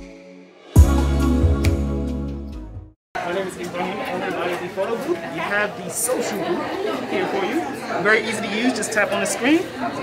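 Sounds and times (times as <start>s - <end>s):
chatter of many people: 3.2s - 10.0s.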